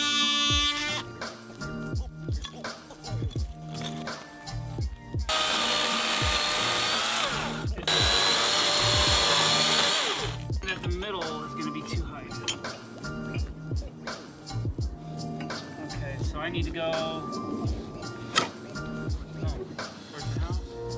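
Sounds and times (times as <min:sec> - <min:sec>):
chainsaw cutting wood: 0:05.3 - 0:10.4.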